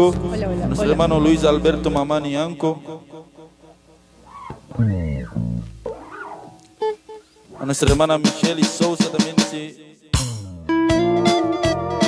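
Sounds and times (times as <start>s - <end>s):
electric bass notes: 0.0s - 2.4s, 3.5s - 8.0s, 10.3s - 12.0s
electric guitar notes: 0.0s - 8.0s, 10.7s - 12.0s.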